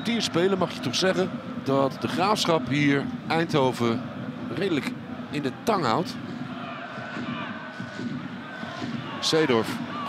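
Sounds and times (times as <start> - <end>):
murmur of crowd voices: 0.0 - 10.0
distant shouts or chanting: 6.2 - 10.0.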